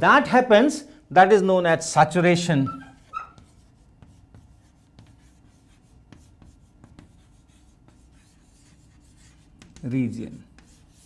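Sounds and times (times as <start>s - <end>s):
chalk scratching on chalkboard: 2.7s - 11.0s
chalk tapping on board: 3.0s - 11.0s.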